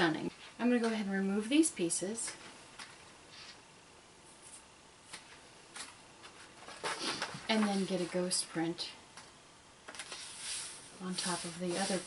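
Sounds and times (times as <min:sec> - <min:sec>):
faint paper rustles: 0:02.3 - 0:03.6, 0:04.3 - 0:08.6, 0:09.9 - 0:12.0.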